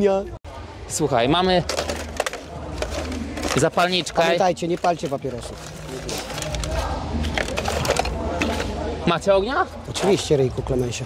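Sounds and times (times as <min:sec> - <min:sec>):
small objects clicking and rustling: 0:01.6 - 0:08.7.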